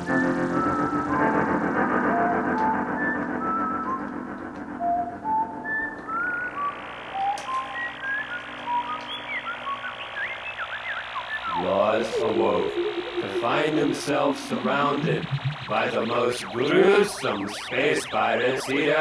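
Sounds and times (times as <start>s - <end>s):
electronic bleeps: 7.2s - 19.0s
quick rising chirps: 9.8s - 19.0s
voice: 11.5s - 19.0s
held synthesizer chord: 11.6s - 18.3s.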